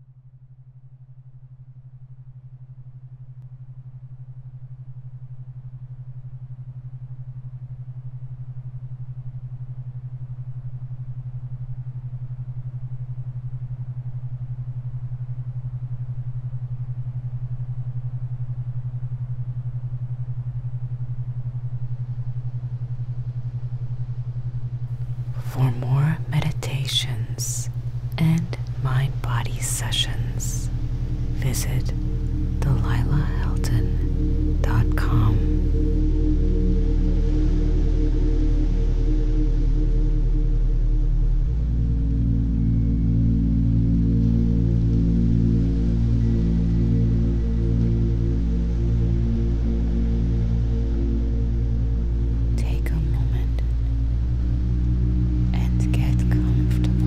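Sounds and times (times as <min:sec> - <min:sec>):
low binaural beat drone: 0:00.0 - 0:57.0
soft whispery voice: 0:25.1 - 0:35.8, 0:52.5 - 0:53.9, 0:55.5 - 0:57.0.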